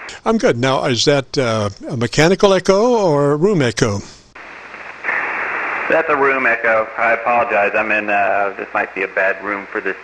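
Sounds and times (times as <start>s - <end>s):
radio static hiss: 0.0s - 2.0s, 3.7s - 10.0s
man talking over radio: 5.9s - 10.0s.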